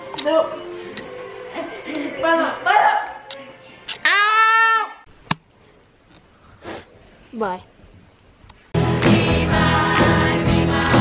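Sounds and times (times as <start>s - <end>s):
person yelling: 4.0s - 5.0s.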